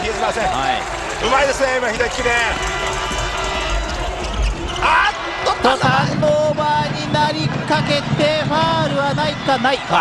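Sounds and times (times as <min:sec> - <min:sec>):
crowd din: 0:00.0 - 0:10.0
music playing in hall: 0:00.5 - 0:10.0
basketball bouncing on court: 0:05.8 - 0:10.0.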